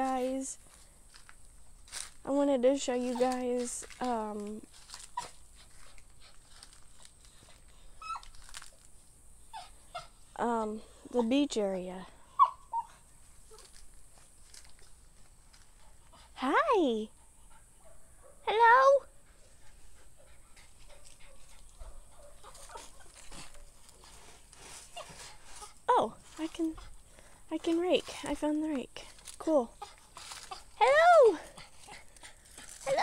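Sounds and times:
faint rustling: 0.0 - 12.2, 12.8 - 16.4, 19.2 - 33.0
dog whining: 8.0 - 8.4, 12.3 - 13.6.

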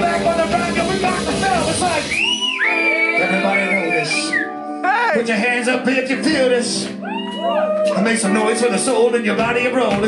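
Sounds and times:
live band with vocals: 0.0 - 10.0.

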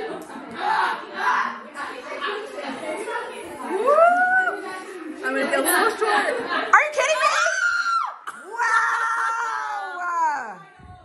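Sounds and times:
women squealing with excitement: 3.8 - 4.6.

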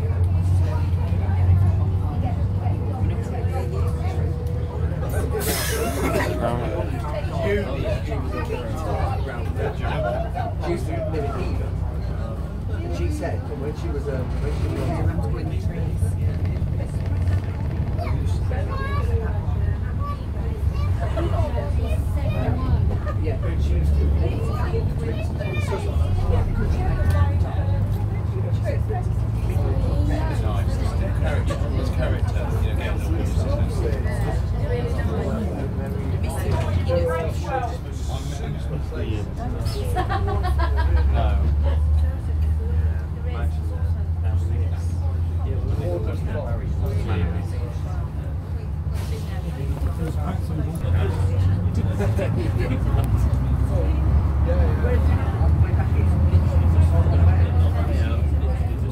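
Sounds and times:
bus engine drone: 0.0 - 58.9
people talking: 0.0 - 58.9.

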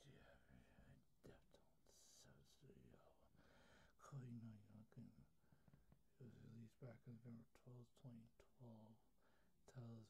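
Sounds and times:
person whispering faintly: 0.0 - 3.4, 4.0 - 5.3, 6.2 - 9.1, 9.7 - 10.0.

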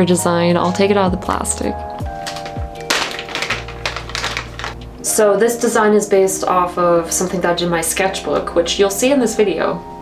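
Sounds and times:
background music: 0.0 - 10.0
plastic sleeve crinkling: 2.0 - 5.0.

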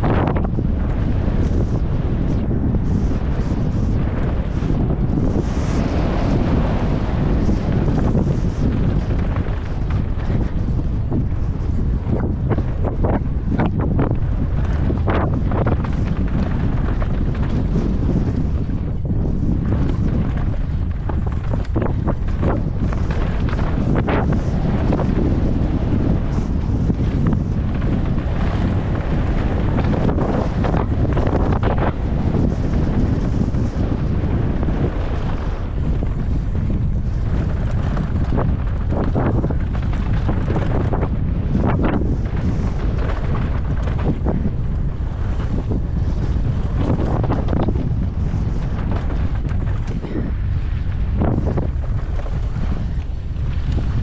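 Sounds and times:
wind buffeting microphone: 0.0 - 54.0
bike knocks and rattles: 7.4 - 34.0.

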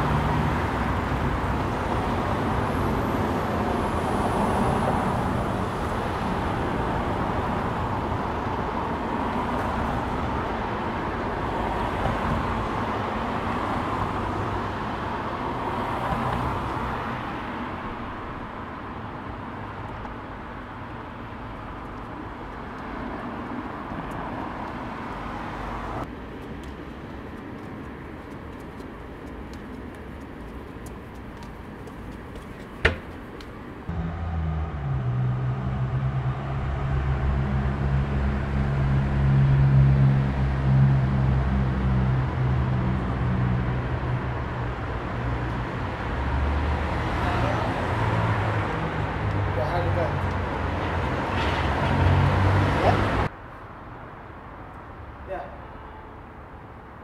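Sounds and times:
traffic noise: 0.0 - 57.0.

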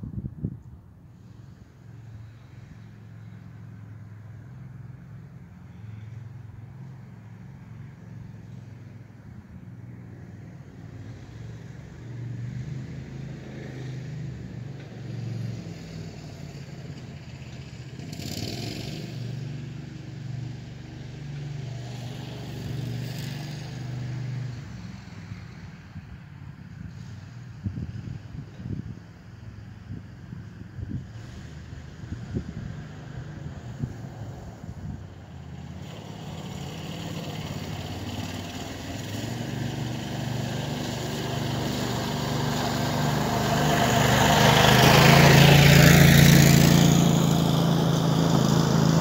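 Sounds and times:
utility vehicle engine running: 35.1 - 49.0.

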